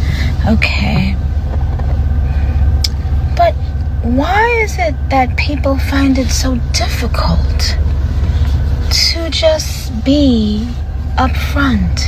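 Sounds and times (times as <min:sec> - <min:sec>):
steady low rumble: 0:00.0 - 0:12.0
woman speaking: 0:00.4 - 0:01.2, 0:03.4 - 0:07.8, 0:08.9 - 0:12.0.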